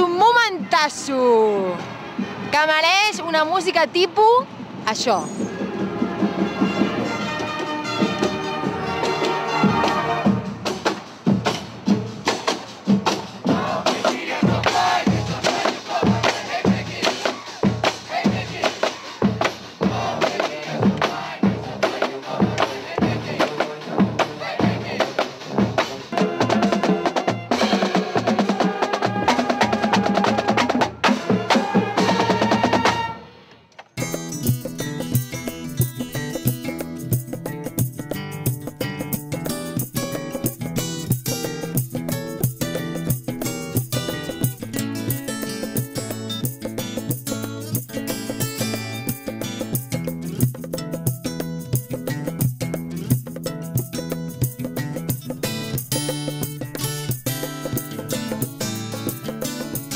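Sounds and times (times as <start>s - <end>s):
marching band playing: 0.0s - 3.7s, 4.5s - 59.9s
strummed guitar music: 34.0s - 59.9s.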